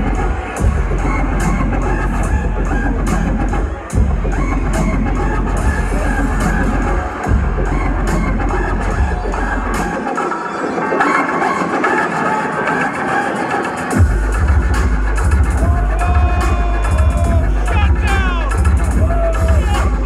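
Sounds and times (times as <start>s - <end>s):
loud bass-heavy dubstep: 13.9s - 20.0s.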